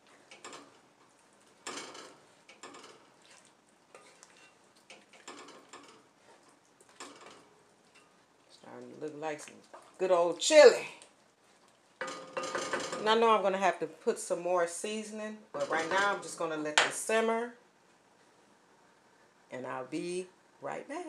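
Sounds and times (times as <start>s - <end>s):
wooden spoon scraping pot: 0.0s - 10.2s.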